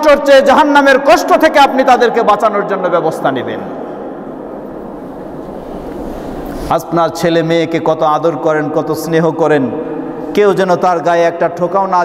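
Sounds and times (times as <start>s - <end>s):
low background rumble: 3.4s - 8.0s
faint hiss: 4.2s - 7.3s.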